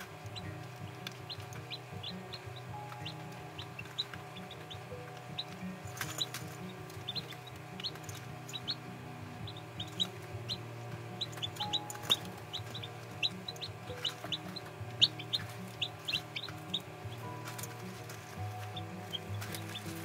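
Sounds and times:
beaks pecking steel dish: 0.0 - 8.8, 9.4 - 20.0
chicks peeping: 0.0 - 20.0
soft background music: 0.0 - 20.0.

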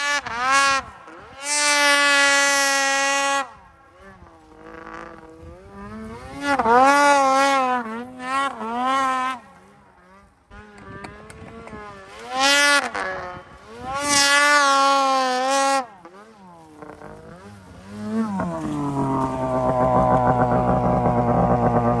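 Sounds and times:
snowmobile engine revving: 0.0 - 22.0.

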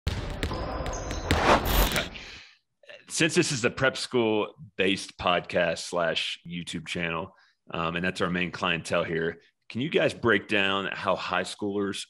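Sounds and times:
basketball bouncing on court: 0.1 - 2.0.

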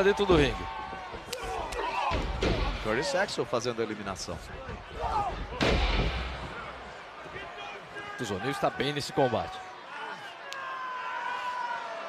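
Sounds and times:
sharp hits: 5.5 - 7.0.

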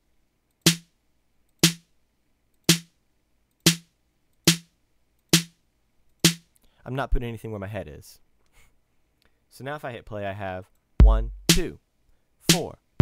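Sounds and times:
electronic snare drum hits: 0.7 - 0.9, 1.6 - 1.8, 2.7 - 2.9, 3.7 - 3.9, 4.5 - 4.7, 5.3 - 5.6, 6.2 - 6.5, 11.0 - 11.7.

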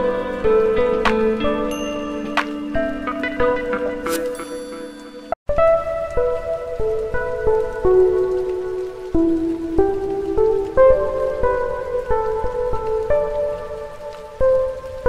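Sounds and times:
slow instrumental melody: 0.0 - 15.0.

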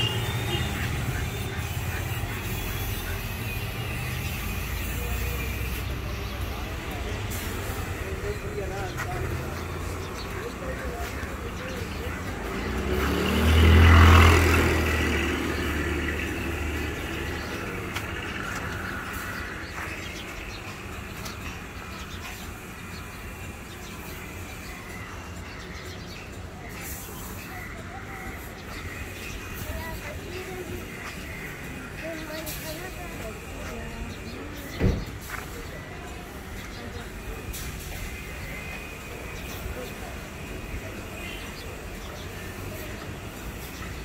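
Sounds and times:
faint voices: 0.0 - 44.0
outdoor background noise: 0.0 - 44.0
vehicle engine passing by: 4.2 - 20.2.

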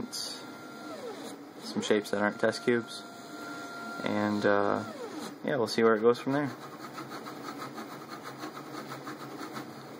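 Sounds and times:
printer mechanical whir: 0.0 - 9.9.

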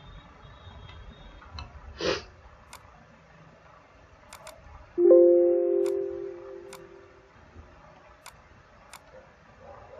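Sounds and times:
mouse double-click: 4.3 - 4.6, 5.8 - 7.0
computer alert chime: 5.0 - 7.2.

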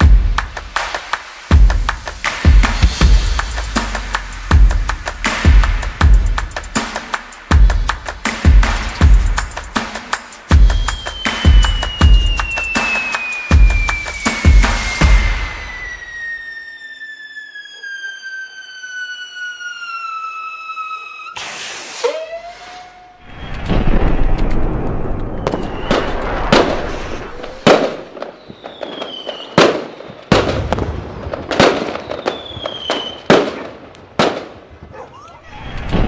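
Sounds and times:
firework crackling: 0.0 - 34.9
firework bangs: 0.0 - 35.1
firework whistle: 0.8 - 7.5, 10.5 - 34.4.

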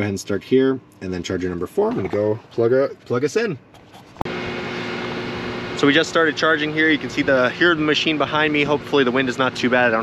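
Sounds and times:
charger cooling fans whirring: 0.0 - 10.0.

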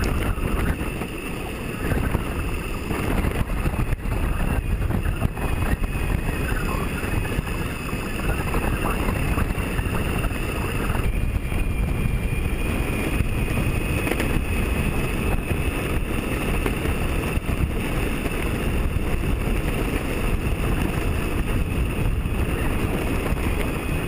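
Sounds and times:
high electric motor whine: 0.0 - 24.0
skateboard wheels rumbling on asphalt: 0.0 - 24.0
wind buffeting microphone: 0.0 - 24.0.

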